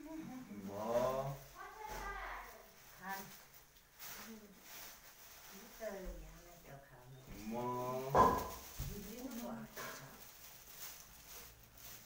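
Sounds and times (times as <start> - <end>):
dog barking: 8.1 - 8.6.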